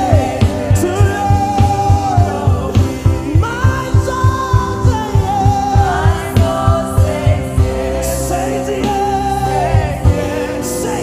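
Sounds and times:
fast low drum beat: 0:00.0 - 0:10.8
band playing: 0:00.0 - 0:11.0
gospel singing: 0:00.0 - 0:11.0.

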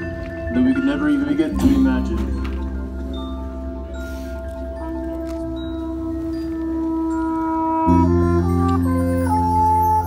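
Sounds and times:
chime-like mallet percussion chord: 0:00.0 - 0:09.4.

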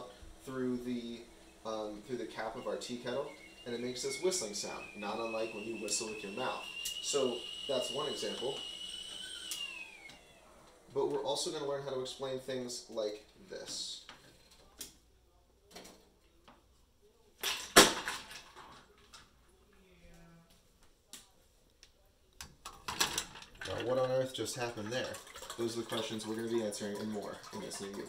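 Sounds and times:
kettle whistling: 0:00.0 - 0:10.8.

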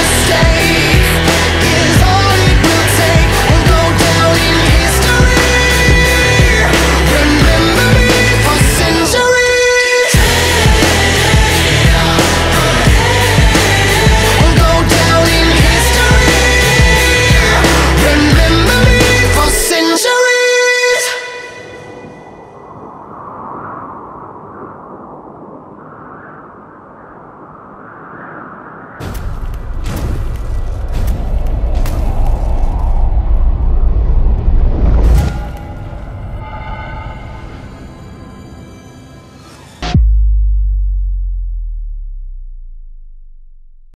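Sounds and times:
low rumbling whoosh: 0:21.6 - 0:38.2
loud cinematic impact with crackling: 0:29.0 - 0:36.3
deep synthesized bass boom: 0:39.8 - 0:44.0.

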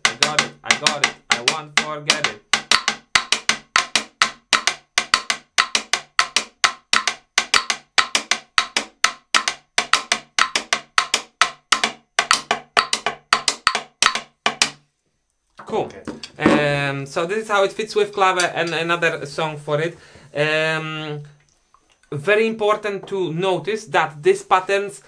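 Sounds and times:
sticks clicking on wooden block: 0:00.0 - 0:14.8.

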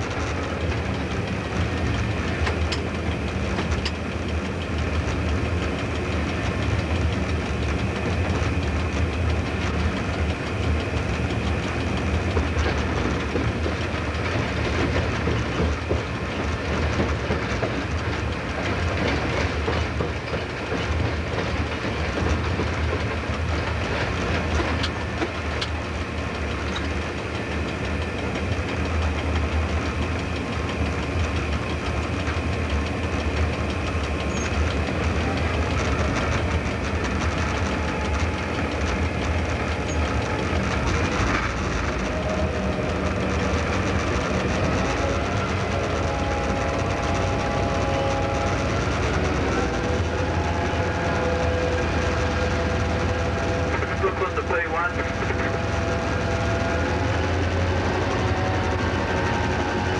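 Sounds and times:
locomotive engine rumble: 0:00.0 - 0:59.9
wheels clicking over rail joints: 0:00.0 - 0:59.9
wavering whine: 0:23.0 - 0:59.9.

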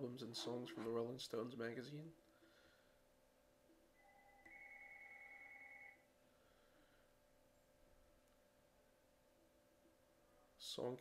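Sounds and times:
faint two-pitch electronic tone: 0:03.9 - 0:06.1.

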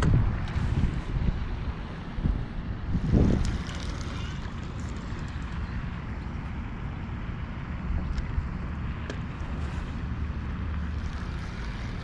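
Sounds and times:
wind buffeting microphone: 0:00.0 - 0:06.4.

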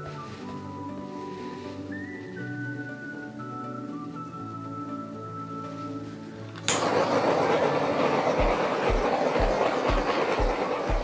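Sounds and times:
background music with a beat: 0:00.0 - 0:11.0
torch igniting click: 0:06.5 - 0:11.0
torch hissing: 0:06.7 - 0:11.0.

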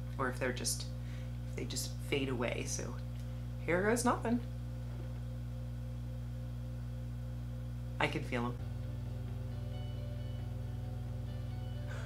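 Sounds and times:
steady low hum of held tones: 0:00.0 - 0:12.0.

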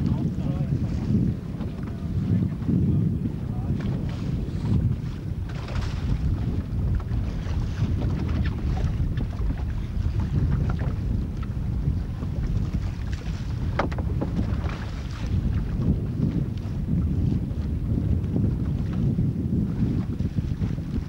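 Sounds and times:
wind buffeting microphone: 0:00.0 - 0:21.0
knocks from boat: 0:00.8 - 0:02.7, 0:03.7 - 0:16.7
water splashes: 0:03.6 - 0:16.7.

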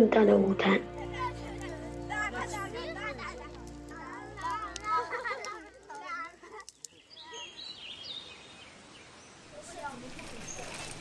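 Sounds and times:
faint outdoor hiss: 0:00.0 - 0:11.0
small birds chirping: 0:00.8 - 0:11.0.

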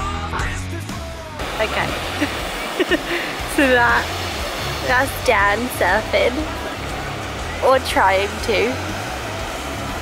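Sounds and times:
rock music: 0:00.0 - 0:10.0
voices: 0:01.2 - 0:10.0
surf breaking on beach: 0:01.4 - 0:10.0.

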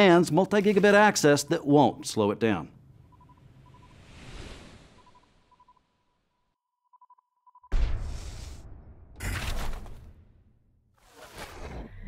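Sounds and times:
faint short beeps: 0:03.0 - 0:04.0.

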